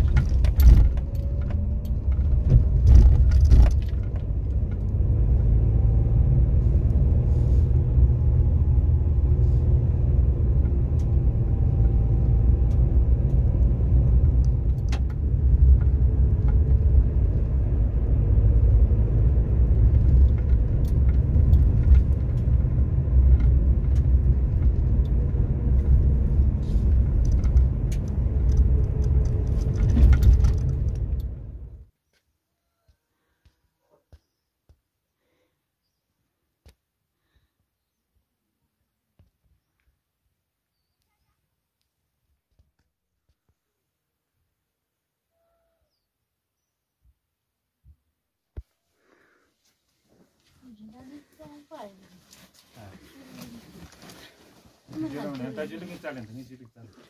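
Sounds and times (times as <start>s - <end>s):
car engine and road rumble: 0.0s - 31.9s, 49.8s - 57.0s
light clicks and rattles: 26.8s - 31.4s.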